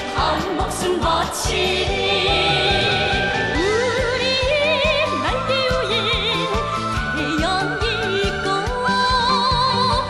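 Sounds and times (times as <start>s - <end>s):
high voice singing with vibrato: 0.0s - 10.0s
instrumental accompaniment with beat: 0.0s - 10.0s.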